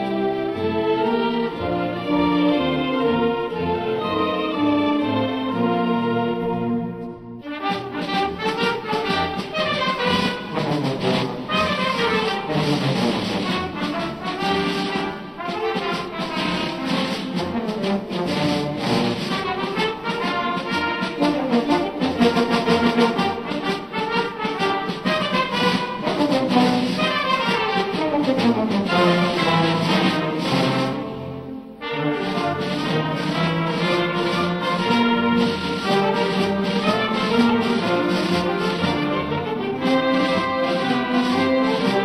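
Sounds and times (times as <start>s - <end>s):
brass march: 0.0s - 42.0s.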